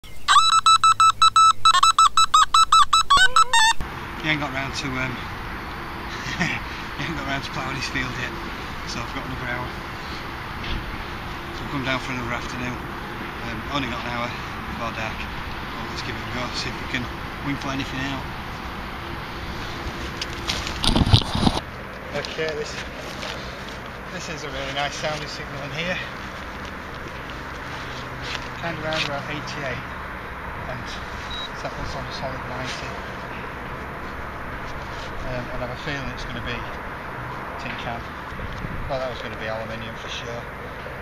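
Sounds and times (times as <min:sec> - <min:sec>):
rapid electronic bleeps: 0:00.3 - 0:03.8
roots and earth tearing: 0:20.1 - 0:21.7.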